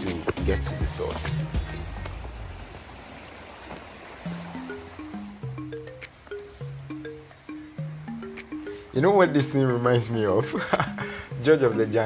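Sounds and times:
background music melody: 0.0 - 3.3, 4.2 - 12.0
stream running over rocks: 0.0 - 9.4.

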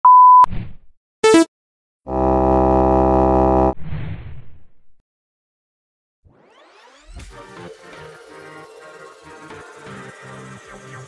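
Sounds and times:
loud buzzing electronic tone: 1.2 - 1.5
steady electronic beep: 1.2 - 1.5.

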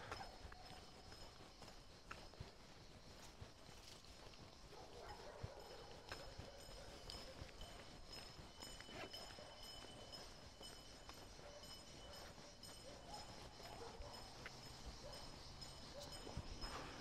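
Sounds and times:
faint footsteps on asphalt: 0.0 - 17.0.

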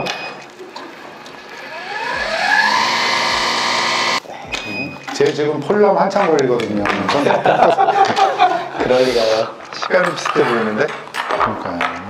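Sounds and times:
mixer motor whining: 0.0 - 4.2.

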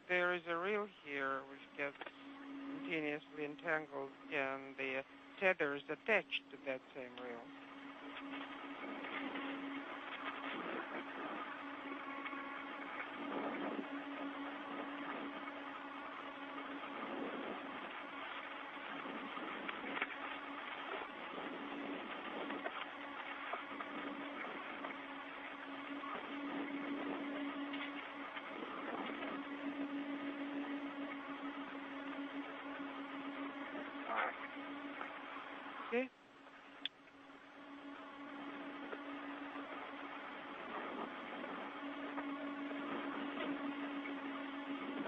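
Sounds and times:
low hum: 0.0 - 45.0
radio hiss and crackle: 0.0 - 45.0.

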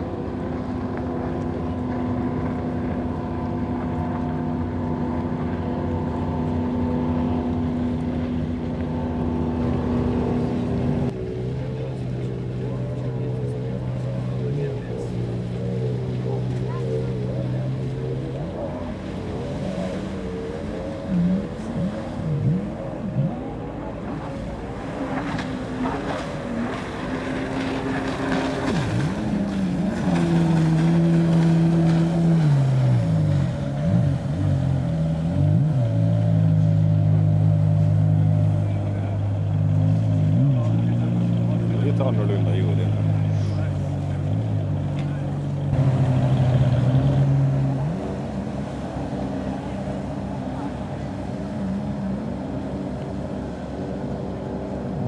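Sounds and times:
personal watercraft engines: 0.0 - 55.0.

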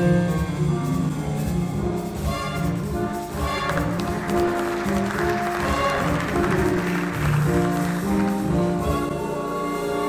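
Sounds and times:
drums: 0.0 - 10.0
jazz big band playing: 0.0 - 10.0.

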